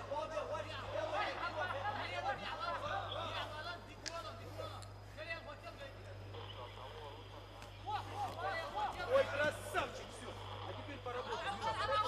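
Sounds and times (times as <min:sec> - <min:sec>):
low electrical hum: 0:00.0 - 0:12.0
voices calling and shouting: 0:00.0 - 0:12.0.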